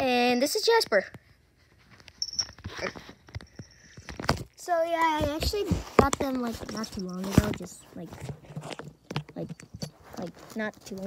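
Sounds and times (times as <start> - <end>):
soft rustling from handling: 1.4 - 11.0.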